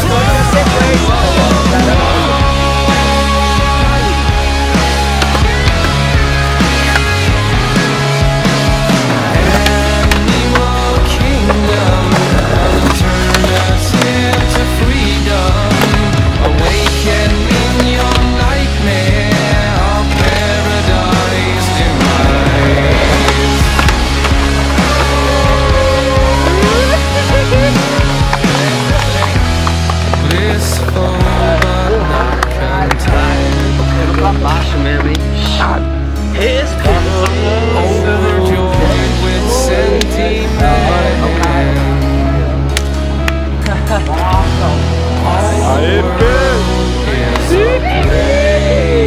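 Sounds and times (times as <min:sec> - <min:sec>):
loud music: 0:00.0 - 0:49.0
skateboard wheels rolling: 0:08.3 - 0:18.6, 0:19.9 - 0:34.2
skateboard grinding metal handrail: 0:09.0 - 0:14.8.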